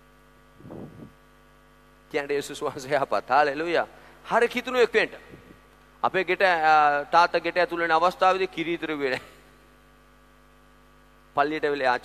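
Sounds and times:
electrical mains hum: 0.0 - 12.0
man speaking: 2.1 - 5.2, 6.0 - 9.2.

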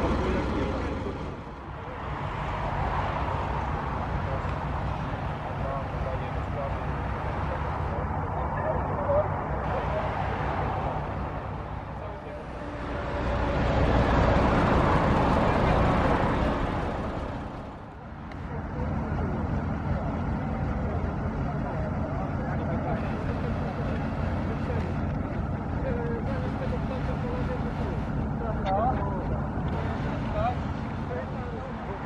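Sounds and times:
bus diesel engine: 0.0 - 32.0.

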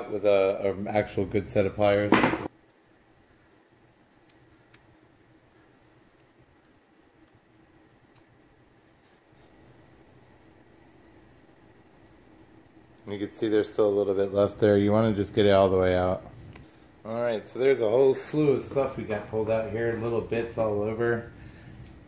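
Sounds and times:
room hum: 0.0 - 22.0.

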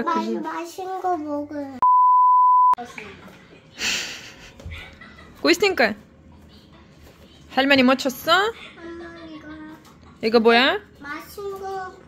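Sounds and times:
test-tone beep: 1.8 - 2.8.

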